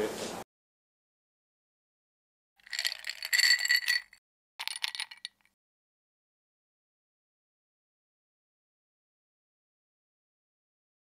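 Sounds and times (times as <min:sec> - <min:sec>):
ice rattling in cocktail shaker: 0:02.6 - 0:05.5.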